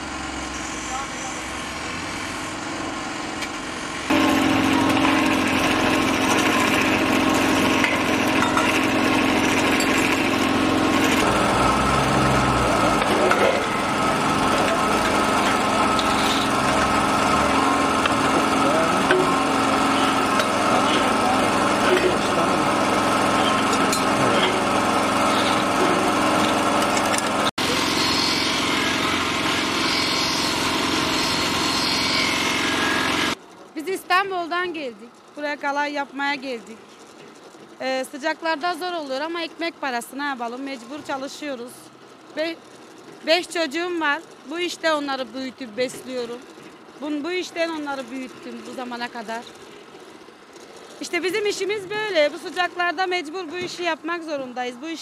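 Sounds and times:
small electric motor whining: 0:00.0 - 0:33.4.

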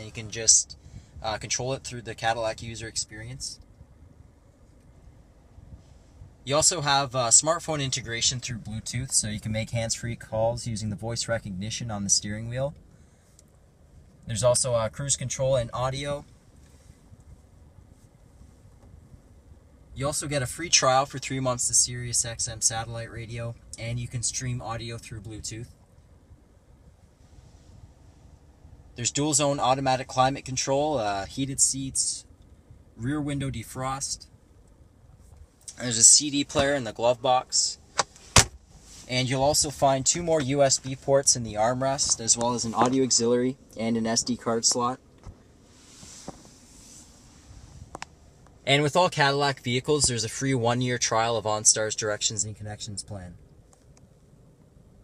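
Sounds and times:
car cabin low rumble: 0:00.0 - 0:55.0.

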